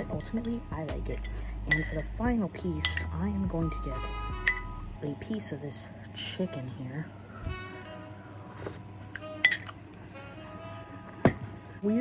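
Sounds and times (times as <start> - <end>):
metal spoon clinking a bowl: 0.0 - 3.3, 4.4 - 4.8, 9.4 - 9.8
soft background music: 0.0 - 12.0.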